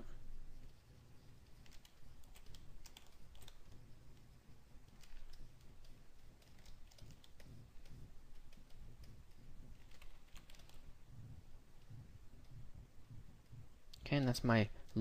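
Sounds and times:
low steady hum: 0:00.0 - 0:15.0
keyboard keys clicking: 0:01.4 - 0:10.9.

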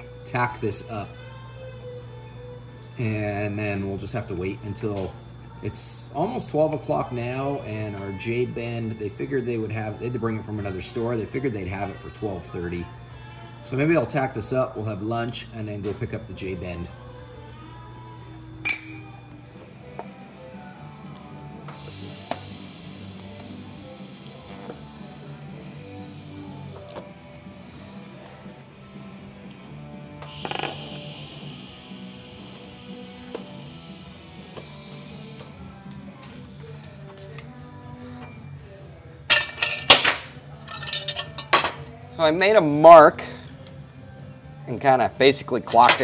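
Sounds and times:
background music: 0:00.0 - 0:46.0
metal clinks on bench: 0:18.7 - 0:19.1
welding hiss: 0:21.6 - 0:26.9, 0:30.2 - 0:35.6.

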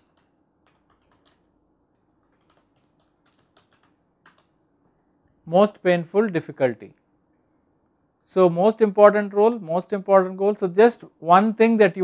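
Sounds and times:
faint keyboard typing: 0:00.0 - 0:05.0.

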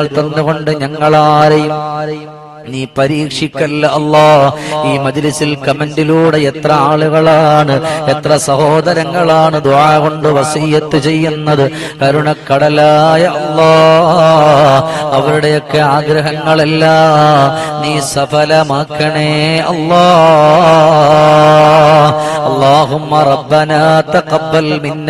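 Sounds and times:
man chanting into a microphone: 0:00.0 - 0:25.0.

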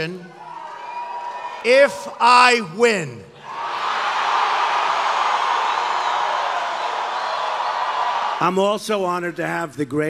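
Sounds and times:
crowd cheering and applauding: 0:00.3 - 0:02.0, 0:03.4 - 0:08.6.

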